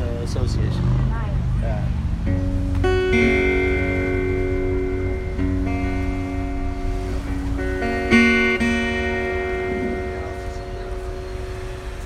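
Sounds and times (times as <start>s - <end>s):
low steady rumble: 0.0s - 12.0s
acoustic guitar chords: 2.1s - 12.0s.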